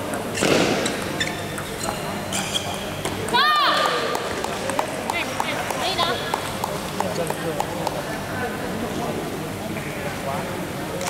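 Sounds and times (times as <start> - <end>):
ping pong ball clicking: 4.1 - 8.0.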